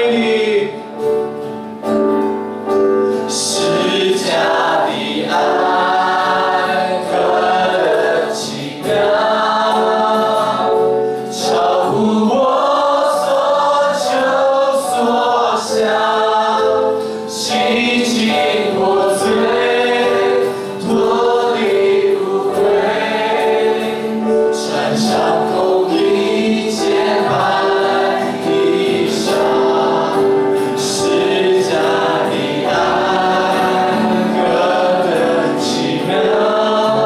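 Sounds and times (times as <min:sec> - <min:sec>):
congregation singing a worship song: 0:00.0 - 0:37.0
instrumental accompaniment: 0:00.0 - 0:37.0.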